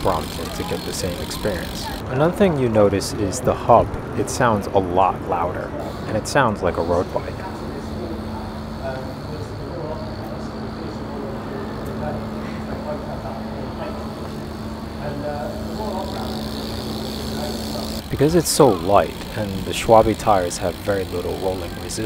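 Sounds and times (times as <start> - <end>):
bicycle freewheel hub ticking: 0.0 - 2.0, 5.8 - 22.0
bike rolling on paving stones: 0.0 - 2.0, 15.4 - 22.0.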